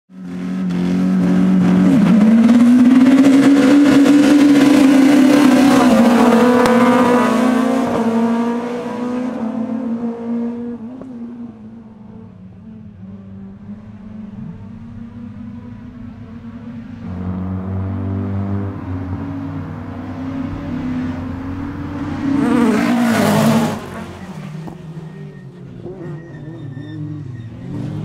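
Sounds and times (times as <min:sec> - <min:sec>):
rallycross cars racing at full throttle: 0:00.1 - 0:28.0.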